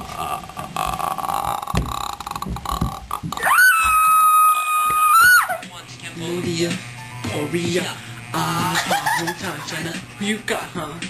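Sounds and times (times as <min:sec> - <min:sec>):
person making croaky noises: 0:00.0 - 0:03.6.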